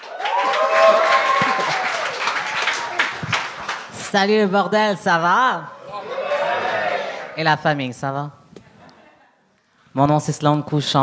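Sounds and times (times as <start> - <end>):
audience cheering: 0.0 - 3.9, 5.8 - 7.4
audience applauding: 0.0 - 4.1.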